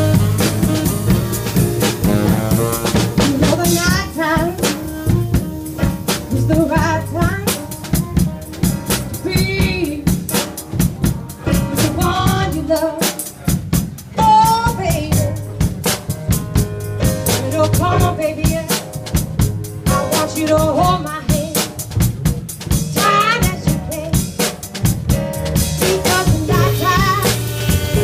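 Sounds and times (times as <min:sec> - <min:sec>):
saxophone phrases: 0:00.0 - 0:10.1, 0:25.8 - 0:28.0
drum kit beat: 0:00.0 - 0:28.0
electric piano: 0:00.0 - 0:28.0.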